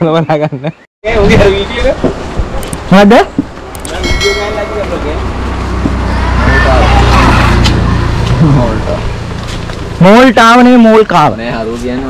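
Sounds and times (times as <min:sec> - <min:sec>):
vehicle passing by: 0:04.6 - 0:10.3.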